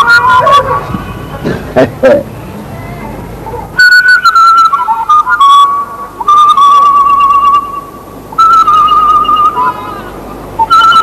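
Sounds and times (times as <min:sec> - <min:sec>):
flute melody with vibrato: 0:00.0 - 0:01.5, 0:03.8 - 0:11.0.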